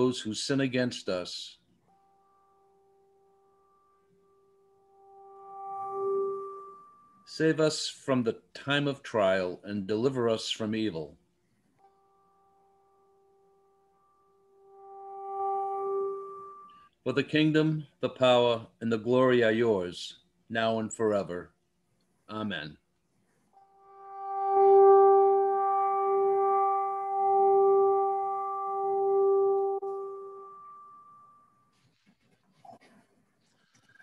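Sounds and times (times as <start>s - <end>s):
steady pitched tone: 1.8s - 8.2s, 11.8s - 17.2s, 23.2s - 32.2s.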